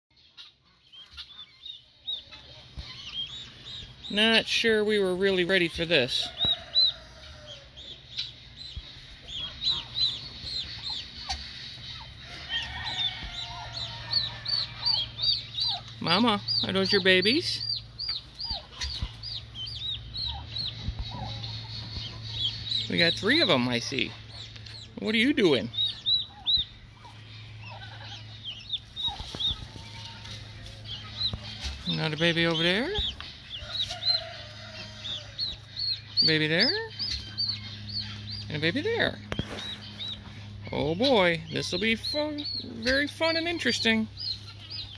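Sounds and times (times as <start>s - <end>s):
chicks peeping: 0.1s - 44.9s.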